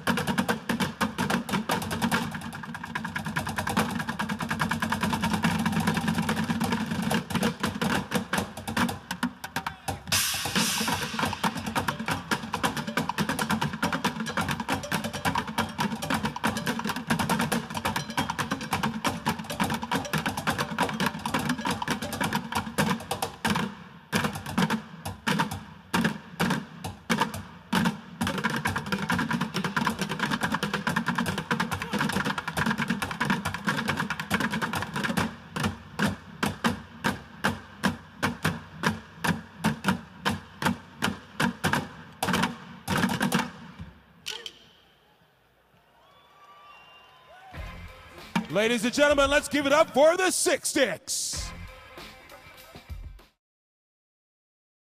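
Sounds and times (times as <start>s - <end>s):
bucket drumming: 0.0s - 44.0s, 47.6s - 51.7s
bright cymbal crash: 10.1s - 12.4s.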